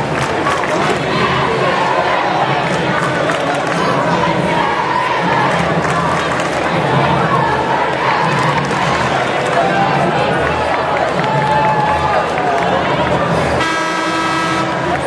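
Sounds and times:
crowd chatter: 0.0s - 15.0s
arena horn steady tone: 13.6s - 14.9s.

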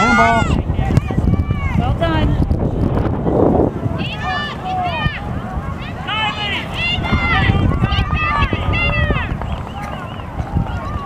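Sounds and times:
high-pitched voices shouting: 0.0s - 1.8s, 4.0s - 9.4s.

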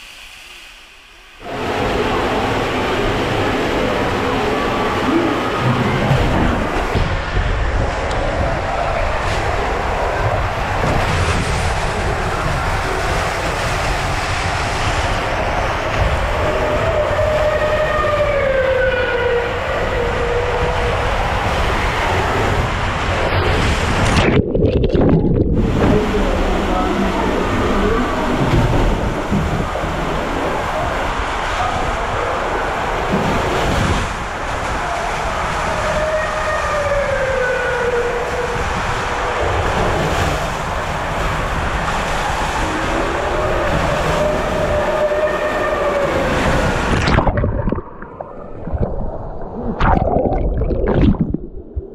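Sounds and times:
water rushing in slide tube: 0.0s - 51.9s
water slide rumble: 1.4s - 51.9s.

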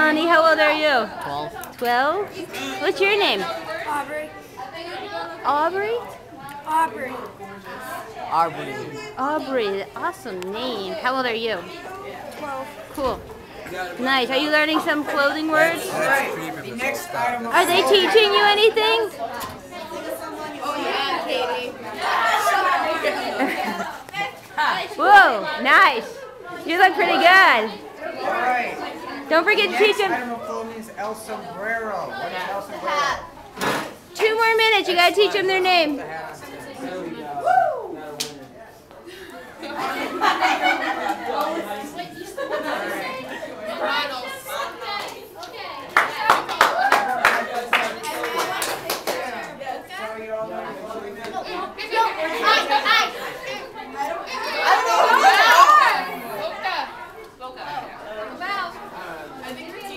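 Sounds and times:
classroom chatter: 0.0s - 59.9s
students talking: 0.0s - 59.9s.

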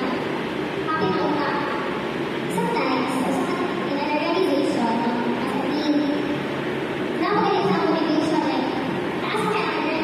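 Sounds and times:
steady rushing background noise: 0.0s - 10.0s
woman talking over loudspeaker: 0.9s - 1.8s, 2.5s - 6.3s, 7.2s - 10.0s.

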